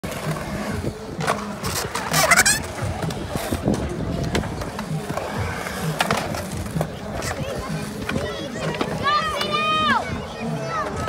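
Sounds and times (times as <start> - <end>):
skateboard clicks and knocks: 0.0 - 11.0
skateboard wheels rolling on concrete: 0.0 - 11.0.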